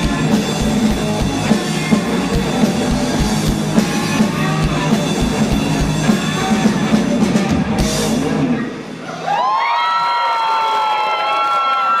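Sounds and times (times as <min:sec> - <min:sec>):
live rock band playing: 0:00.0 - 0:09.2.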